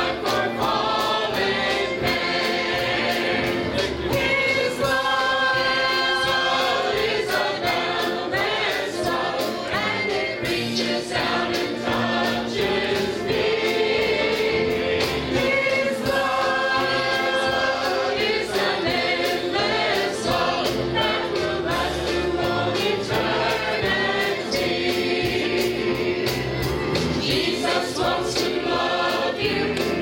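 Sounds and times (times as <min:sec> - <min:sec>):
choir singing gospel: 0:00.0 - 0:30.0.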